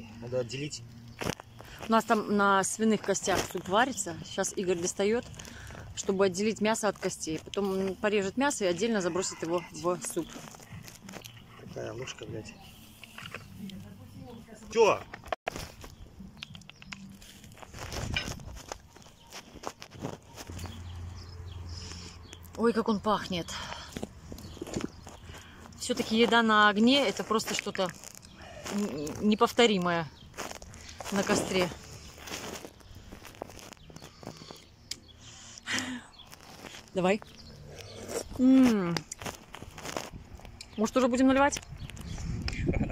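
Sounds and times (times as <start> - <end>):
footsteps on grass: 0.9 - 22.8, 23.5 - 34.6, 36.2 - 42.1
phone rustling: 15.0 - 21.5, 30.2 - 34.8.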